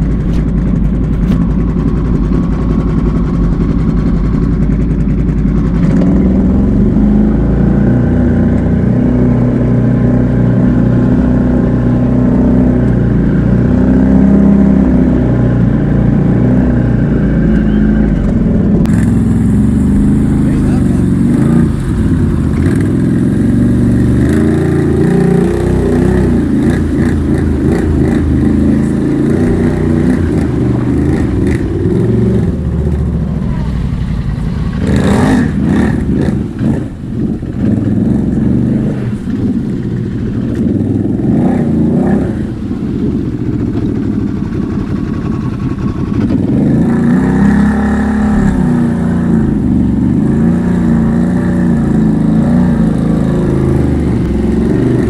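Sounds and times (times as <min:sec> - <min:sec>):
atv engine revving: 0:00.0 - 0:55.0.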